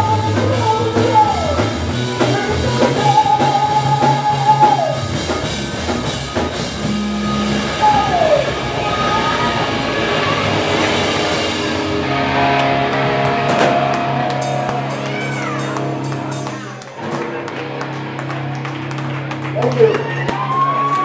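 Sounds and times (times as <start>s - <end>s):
live rock band playing: 0.0s - 21.0s
guitar note bending down: 5.0s - 17.9s.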